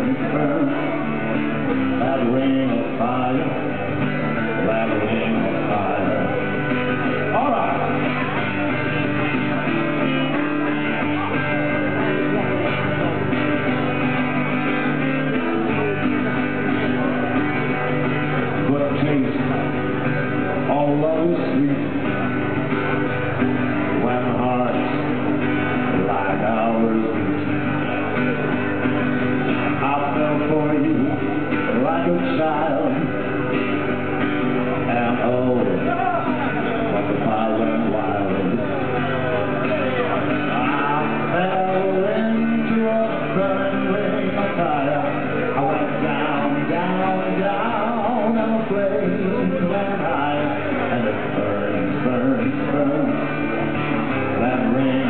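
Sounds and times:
man singing into microphone: 0:00.0 - 0:08.5, 0:18.5 - 0:22.3, 0:23.7 - 0:28.2, 0:29.6 - 0:33.2, 0:34.8 - 0:55.0
acoustic guitar strumming: 0:00.0 - 0:55.0.

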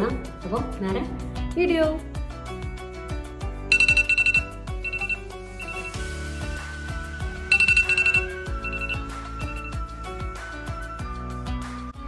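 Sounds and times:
background music with steady beat: 0:00.0 - 0:12.0
phone alarm beeping: 0:03.7 - 0:06.0, 0:07.5 - 0:09.8.

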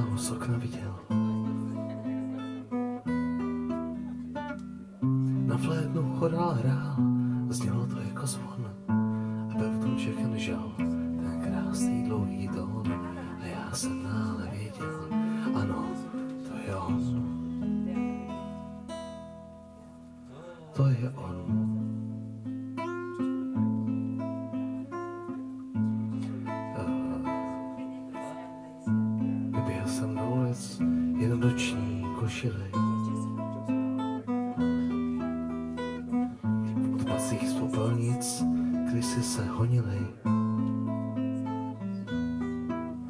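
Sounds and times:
man singing: 0:00.0 - 0:01.8, 0:05.2 - 0:17.5, 0:20.3 - 0:22.0, 0:26.4 - 0:27.8, 0:29.4 - 0:33.5, 0:36.4 - 0:40.6
acoustic guitar strumming: 0:00.0 - 0:43.0.

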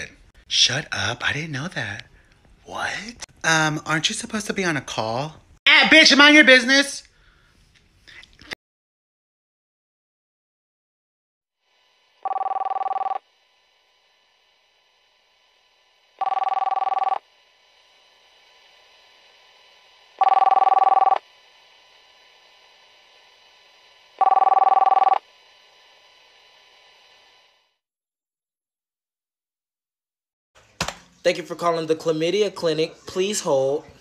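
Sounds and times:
electronic telephone ringing: 0:12.2 - 0:13.2, 0:16.2 - 0:17.2, 0:20.2 - 0:21.2, 0:24.2 - 0:25.2.

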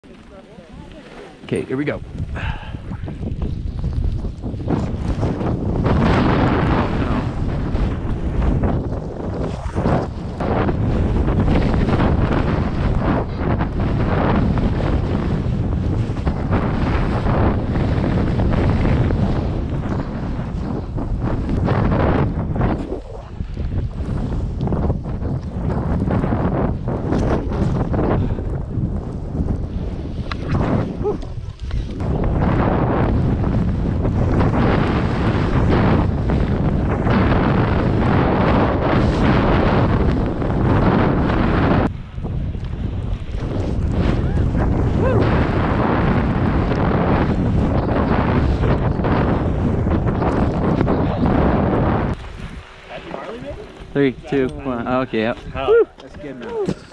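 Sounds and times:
wind rushing over microphone: 0:00.0 - 0:56.9.

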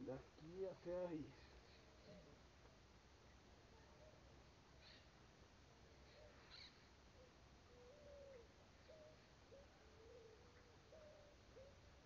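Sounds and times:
faint bird calls: 0:03.7 - 0:05.2, 0:05.8 - 0:12.0.

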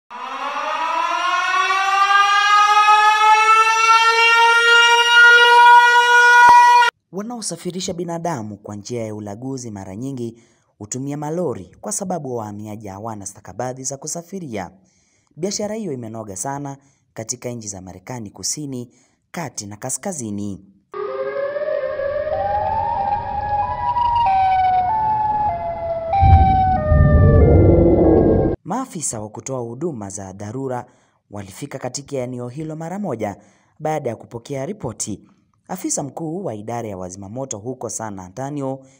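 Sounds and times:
siren winding up: 0:00.1 - 0:06.9, 0:21.0 - 0:28.6
low rumble: 0:26.1 - 0:28.6.

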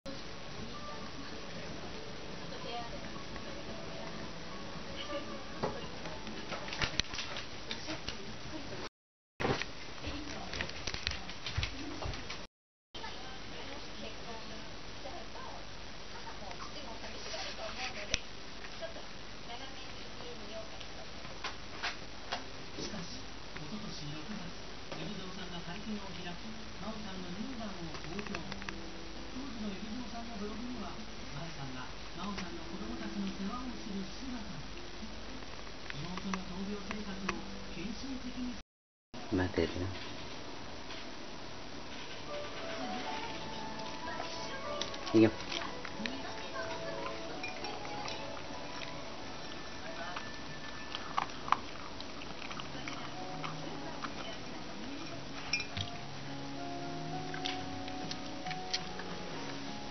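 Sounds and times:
television voices: 0:00.1 - 0:38.6, 0:39.2 - 0:59.9
dog chewing food: 0:42.3 - 0:59.9.

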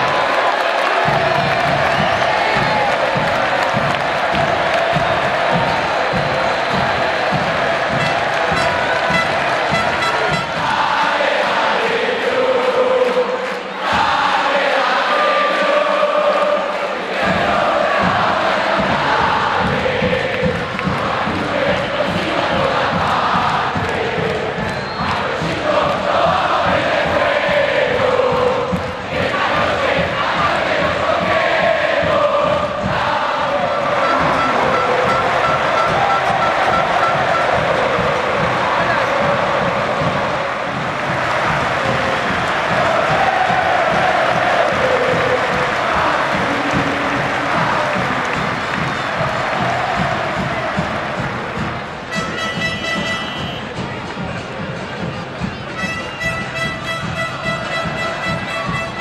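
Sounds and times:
football crowd chanting: 0:00.0 - 0:56.1.

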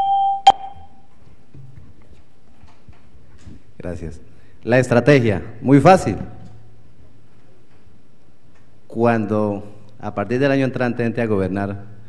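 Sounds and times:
bell ringing: 0:00.0 - 0:01.0.

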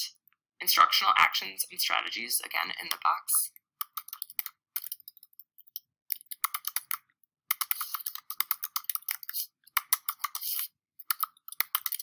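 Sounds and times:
typing on computer keyboard: 0:03.8 - 0:12.0.

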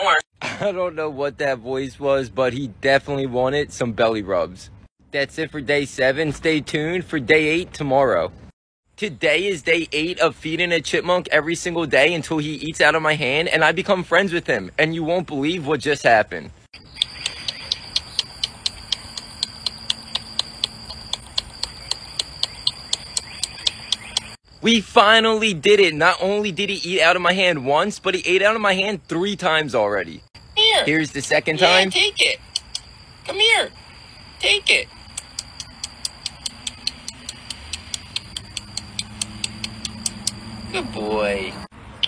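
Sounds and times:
rapid high-pitched clicking: 0:16.8 - 0:24.4, 0:32.5 - 0:32.9, 0:35.1 - 0:40.4
clock-like ticking: 0:17.0 - 0:24.3, 0:35.1 - 0:40.6.

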